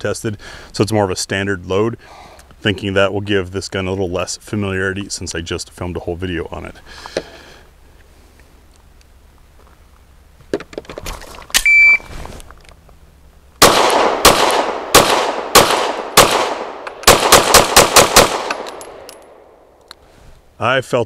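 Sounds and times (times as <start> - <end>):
shot timer beep: 11.6 - 12.0
pistol shots with echo: 13.6 - 19.5.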